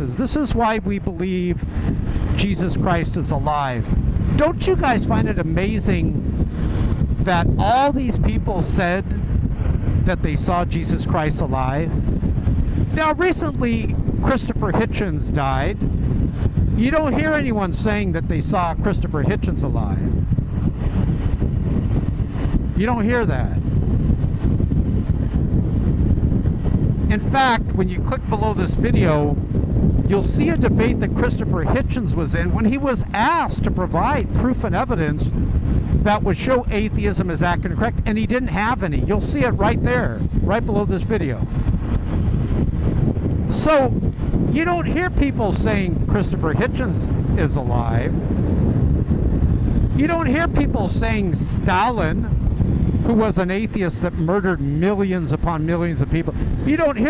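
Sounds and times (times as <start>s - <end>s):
motorcycle running: 0.0s - 57.0s
road noise: 0.0s - 57.0s
wind rushing over microphone: 0.0s - 57.0s.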